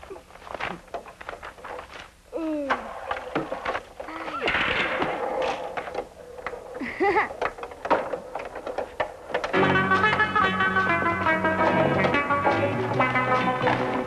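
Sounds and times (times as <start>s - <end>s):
music: 9.5s - 14.0s.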